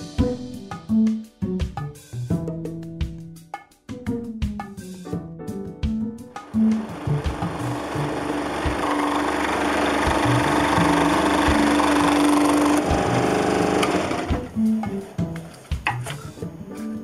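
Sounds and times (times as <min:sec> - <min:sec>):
scroll saw cutting wood: 0:06.5 - 0:14.5.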